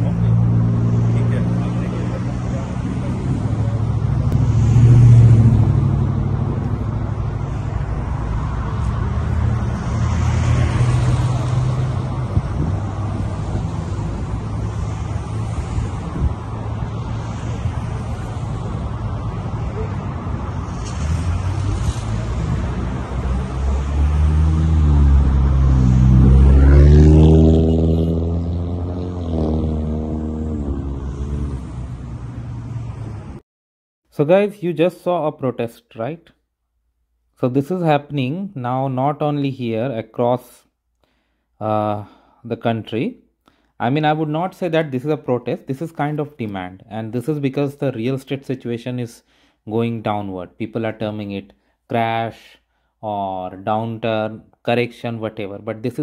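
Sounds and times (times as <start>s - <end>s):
road traffic passing: 0.0s - 33.4s.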